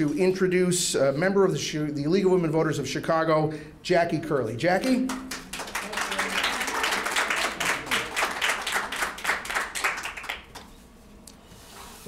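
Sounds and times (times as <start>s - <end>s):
audience clapping: 4.8s - 10.8s.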